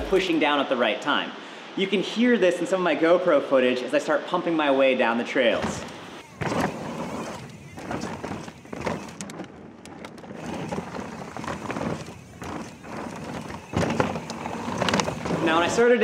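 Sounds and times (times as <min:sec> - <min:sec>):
bike tyres rolling over dirt: 0:05.6 - 0:16.0.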